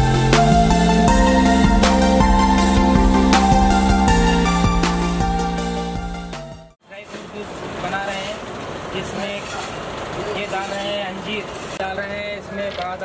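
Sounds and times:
background music: 0:00.0 - 0:06.8
people talking: 0:06.8 - 0:13.0
traffic hum: 0:06.8 - 0:13.0.

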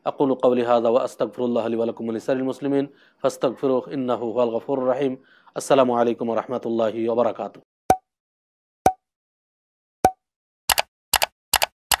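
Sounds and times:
quick double clicks: 0:10.7 - 0:12.0.

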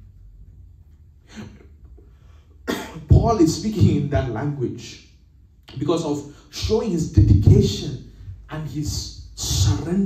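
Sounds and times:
man coughing: 0:02.6 - 0:03.1
man speaking into microphone: 0:02.8 - 0:10.0.

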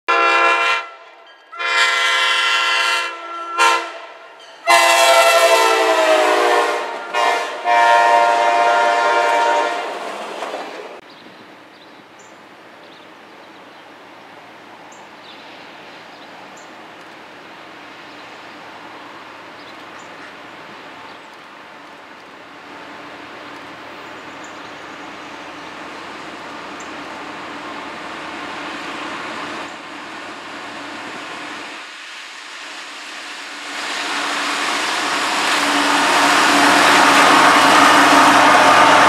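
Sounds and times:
locomotive air horn blasts: 0:00.1 - 0:10.0, 0:35.0 - 0:39.0
faint trackside hiss: 0:11.1 - 0:35.6.

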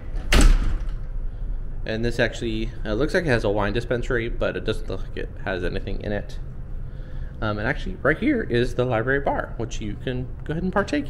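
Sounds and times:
glass door thudding shut: 0:00.2 - 0:01.0.

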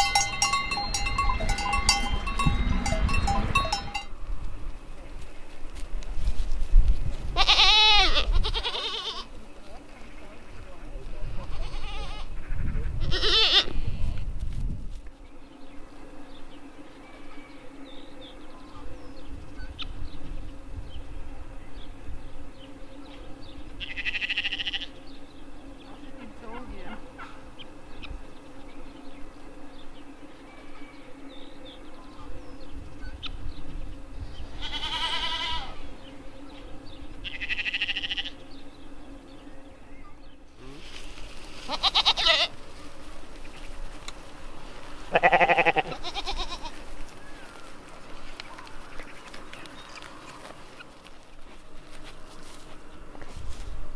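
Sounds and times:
goat bleating: 0:07.4 - 0:09.3, 0:11.4 - 0:13.7, 0:23.8 - 0:24.9, 0:34.6 - 0:35.8, 0:37.2 - 0:38.4, 0:41.6 - 0:42.6, 0:45.1 - 0:46.8.

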